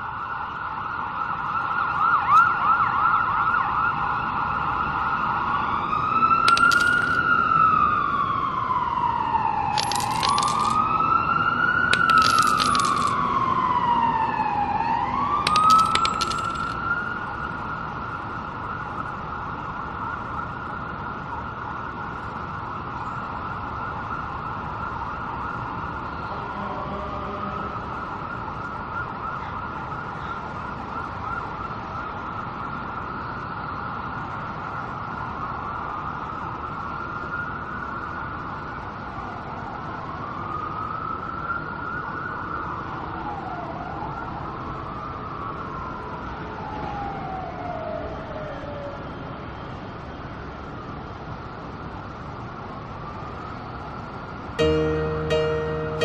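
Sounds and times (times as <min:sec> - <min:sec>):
emergency vehicle siren: 0:00.0 - 0:10.0, 0:10.8 - 0:12.5, 0:13.1 - 0:15.4, 0:16.7 - 0:55.9.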